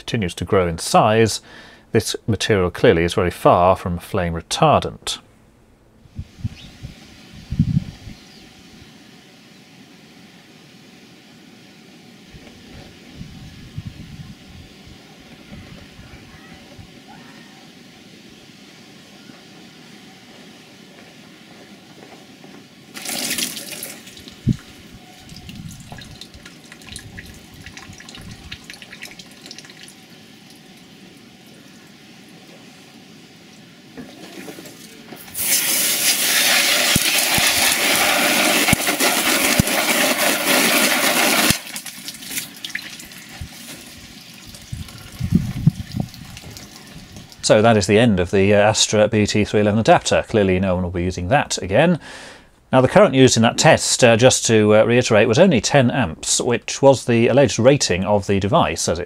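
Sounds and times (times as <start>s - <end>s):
wind rumbling on microphone: 6.0s - 8.9s, 12.3s - 17.0s, 24.2s - 28.6s, 43.3s - 47.4s
jet of water spraying: 22.9s - 47.6s
water splash: 23.0s - 24.5s.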